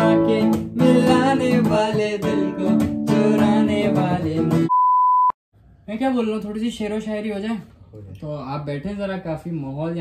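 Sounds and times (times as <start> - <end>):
acoustic guitar strumming: 0.0 - 4.7
man singing: 0.0 - 4.7
electronic beep tone: 4.7 - 5.4.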